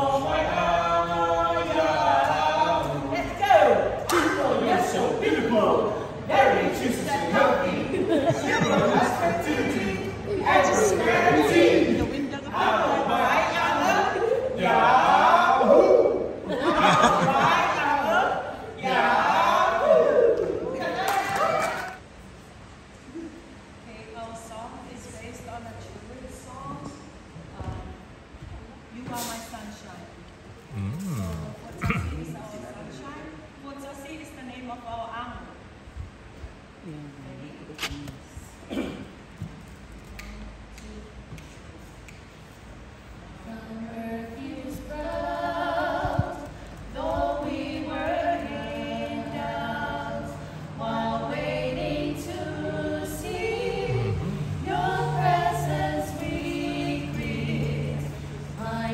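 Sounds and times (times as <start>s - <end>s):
quiet talk in a hall: 0.0s - 58.9s
low vocal sound: 30.6s - 32.4s, 44.8s - 58.9s
women singing without instruments: 43.4s - 58.9s.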